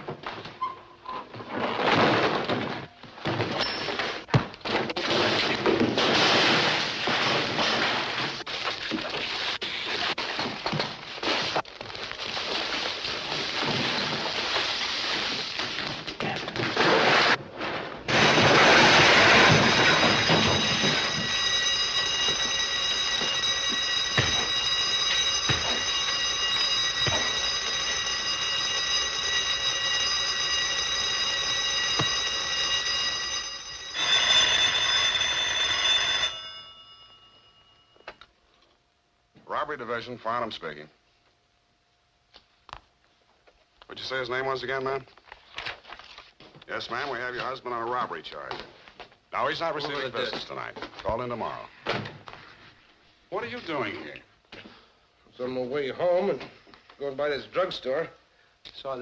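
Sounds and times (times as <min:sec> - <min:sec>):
burglar alarm bell ringing: 0:18.1 - 0:38.3.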